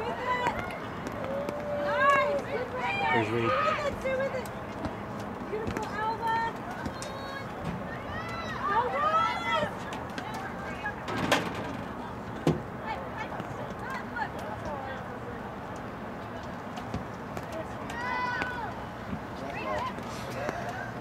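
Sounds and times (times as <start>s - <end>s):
people shouting on a field: 0.0s - 4.1s, 6.0s - 9.8s, 17.9s - 18.8s.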